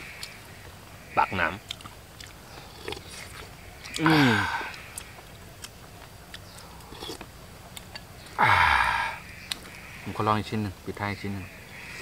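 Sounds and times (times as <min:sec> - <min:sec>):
man sighing with relish: 0:04.0 - 0:04.8, 0:08.4 - 0:09.2.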